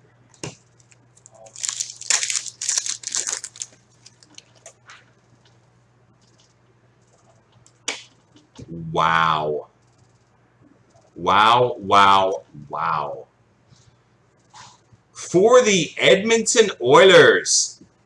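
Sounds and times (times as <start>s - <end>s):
foil wrapper crinkling and tearing: 1.2s - 4.7s.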